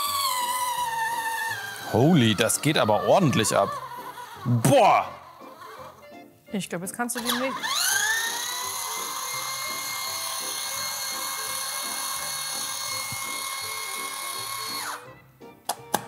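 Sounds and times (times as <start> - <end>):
electric juicer motor whining: 0.0 - 6.1, 7.2 - 15.3.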